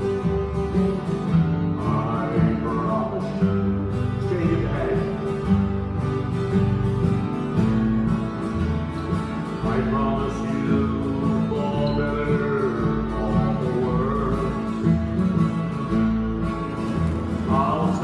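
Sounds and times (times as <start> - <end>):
acoustic guitars strumming: 0.0 - 18.0.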